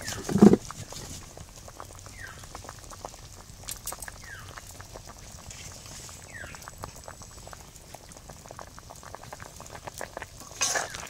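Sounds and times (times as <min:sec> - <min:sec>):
curry bubbling and popping: 0:00.0 - 0:11.0
metal spatula scraping pan: 0:10.5 - 0:11.0.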